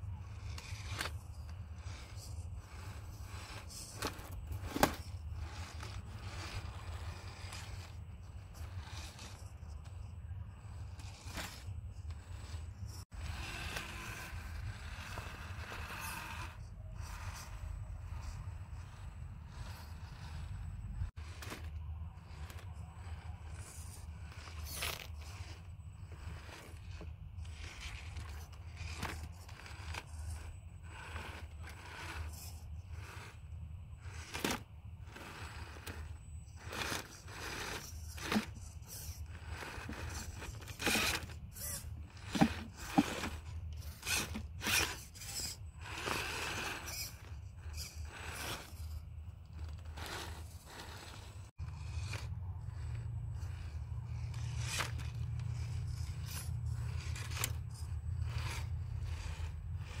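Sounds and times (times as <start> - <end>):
low steady rumble: 0.0 - 60.0
tyres and chassis scraping rock: 0.0 - 60.0.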